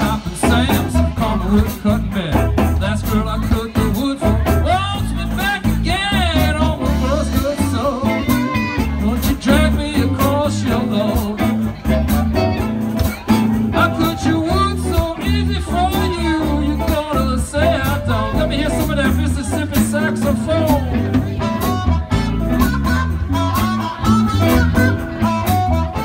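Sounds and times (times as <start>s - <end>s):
drums: 0.0s - 26.0s
electric guitars: 0.0s - 26.0s
amplified harmonica lead: 5.9s - 9.2s, 11.6s - 26.0s.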